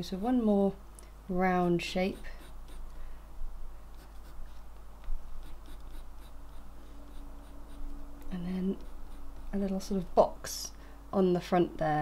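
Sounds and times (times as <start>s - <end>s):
pencil scratching on paper: 1.6s - 2.8s, 4.0s - 4.6s, 5.4s - 9.7s.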